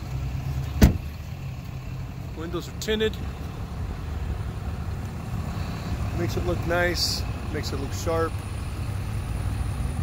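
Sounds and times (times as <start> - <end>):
engine idling rumble: 0.0 - 10.0
car door shutting thud: 0.7 - 1.1.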